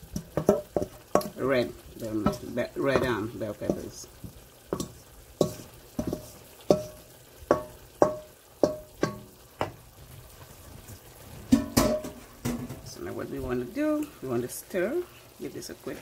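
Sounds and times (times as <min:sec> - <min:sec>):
wooden spoon knocking metal pot: 0:00.0 - 0:09.8, 0:11.5 - 0:12.9
light sizzling: 0:00.0 - 0:16.0.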